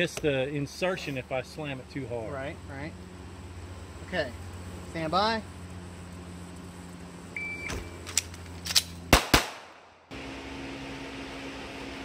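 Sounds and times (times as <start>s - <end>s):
fan humming: 0.0s - 12.0s
shot timer beep: 7.4s - 7.9s
pistol shots: 9.1s - 10.0s.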